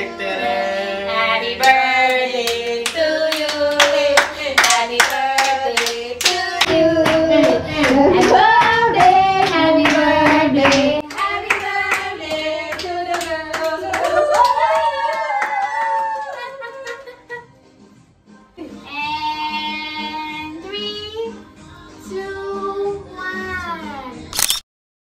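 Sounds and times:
group of people singing: 0.0s - 14.4s
people clapping to a beat: 1.6s - 17.3s.

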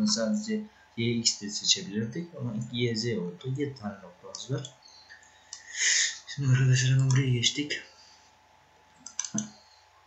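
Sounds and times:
faint room noise: 0.0s - 10.0s
computer mouse clicks: 8.9s - 9.6s.

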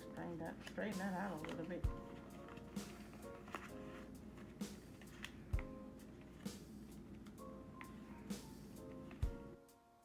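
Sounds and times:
faint background music: 0.0s - 10.0s
plastic binder pockets rustling: 0.5s - 8.2s.

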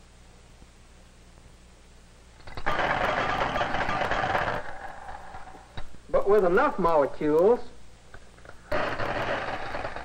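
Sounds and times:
faint film hiss: 0.0s - 2.8s, 4.6s - 8.8s.

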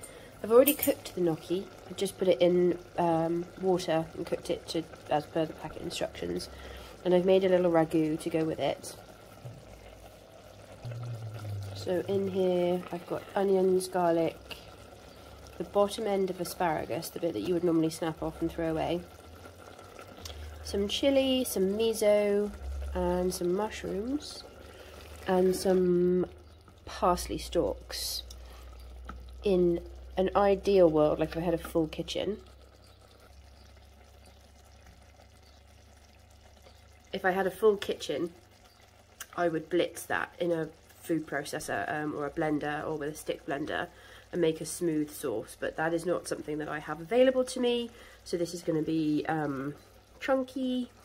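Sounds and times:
low steady hum: 0.0s - 51.0s
sauce simmering in a pot: 0.0s - 51.0s.

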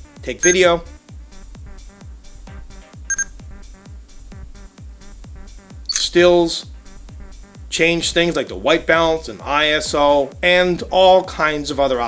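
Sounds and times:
high electronic beep: 0.4s - 0.7s, 3.1s - 3.3s, 5.9s - 6.1s.

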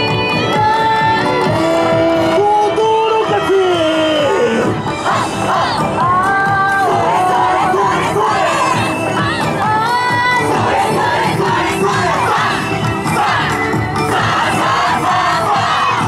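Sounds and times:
loud dance music with beat: 0.0s - 16.0s
group shouting calls in chorus: 6.8s - 9.0s, 10.5s - 16.0s.

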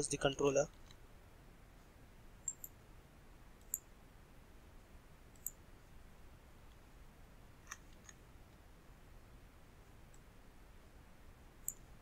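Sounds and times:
faint computer mouse clicks: 3.6s - 3.8s, 5.3s - 5.6s.

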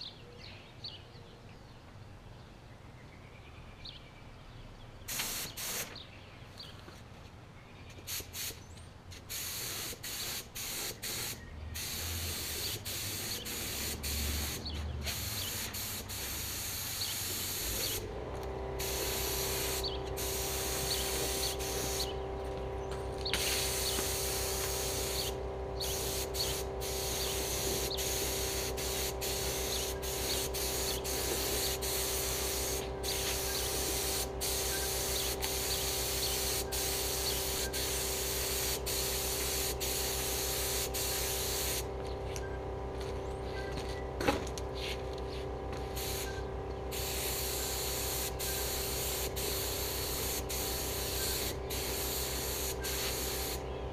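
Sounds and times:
spray gun hissing: 5.1s - 5.9s, 8.1s - 8.6s, 9.3s - 18.1s, 18.8s - 22.1s, 23.4s - 41.9s, 46.0s - 53.6s
air compressor motor hum: 9.3s - 53.9s.

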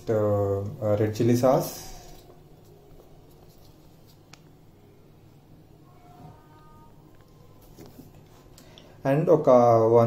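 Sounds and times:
low steady hum: 0.0s - 10.0s
soft handling sounds: 1.6s - 4.6s, 6.0s - 8.8s.

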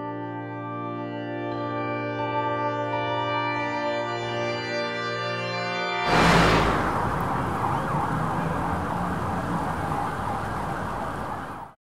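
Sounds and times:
music: 0.0s - 6.1s
distant siren wailing: 6.1s - 11.8s
traffic rumble and hiss: 6.1s - 11.8s.

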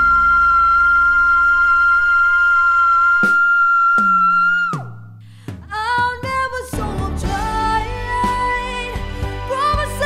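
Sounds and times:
recorded backing track: 0.0s - 10.0s.

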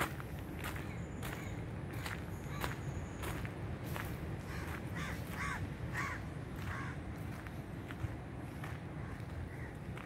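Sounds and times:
crow cawing: 4.5s - 7.0s, 9.0s - 9.8s.

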